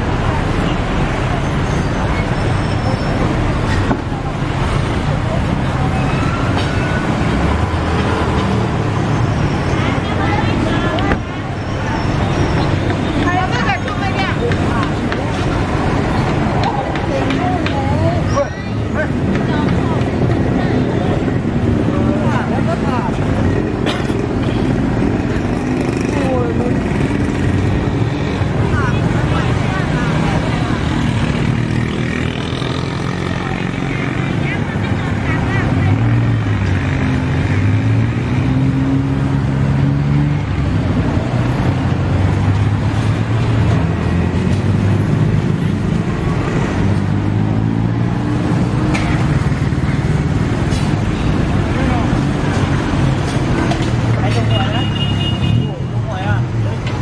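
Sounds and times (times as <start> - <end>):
people talking: 0.0 - 8.6, 9.5 - 24.6, 25.2 - 37.4, 49.0 - 57.0
vehicle engines running: 0.0 - 57.0.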